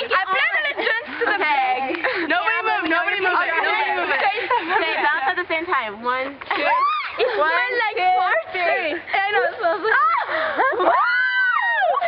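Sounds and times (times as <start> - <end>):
girls screaming: 6.5 - 7.4, 9.9 - 12.0.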